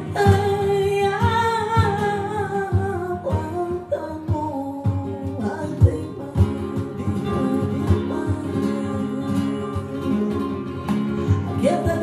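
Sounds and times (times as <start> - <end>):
acoustic guitars strumming: 0.0 - 12.0
woman singing flamenco: 0.0 - 12.0.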